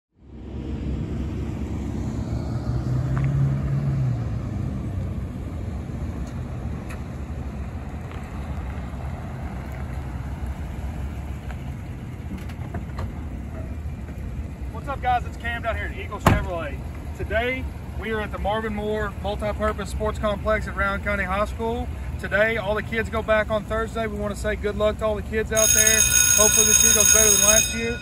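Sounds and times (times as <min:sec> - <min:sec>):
pickup truck engine rumble: 0:00.2 - 0:28.0.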